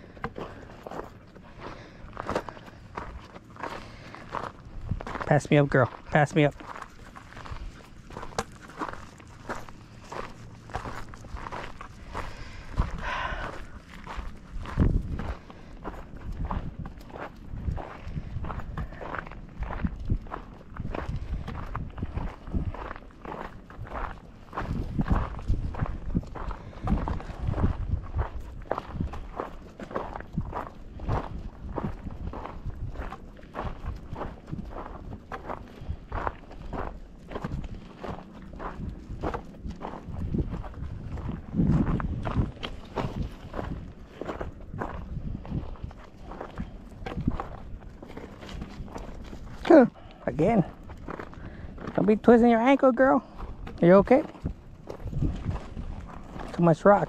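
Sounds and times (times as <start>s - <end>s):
footsteps on gravel: 0.0s - 57.0s.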